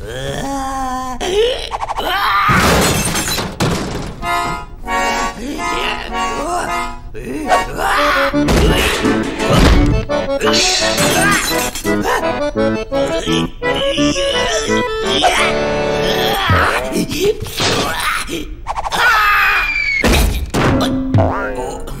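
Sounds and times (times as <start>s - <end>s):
heavy thuds: 2.6s - 4.8s, 8.4s - 11.4s
accordion chords: 4.2s - 16.2s
cartoon music: 4.3s - 17.0s
cartoon character vocal sounds: 5.3s - 9.7s, 10.4s - 12.4s, 13.1s - 19.9s.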